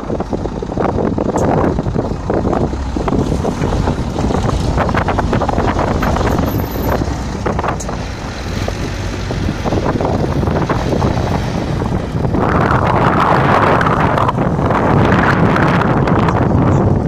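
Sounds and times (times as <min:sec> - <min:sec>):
diesel truck engines labouring: 0:00.0 - 0:17.0
wind buffeting microphone: 0:00.0 - 0:17.0.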